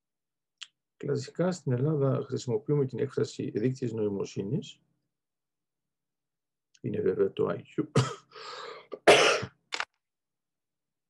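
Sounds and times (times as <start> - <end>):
man coughing: 7.9 - 8.3, 9.0 - 9.6.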